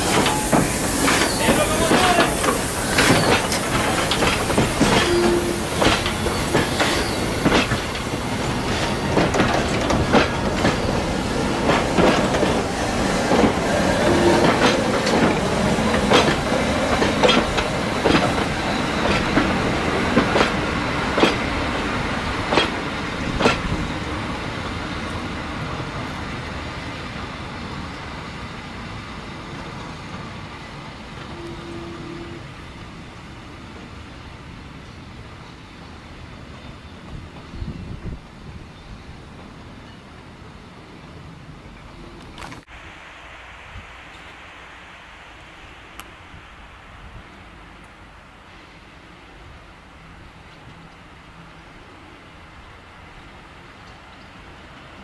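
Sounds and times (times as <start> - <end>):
train wheels clicking over rail joints: 0.0 - 25.2
train rolling: 0.0 - 55.0
wheel squeals: 0.1 - 7.6.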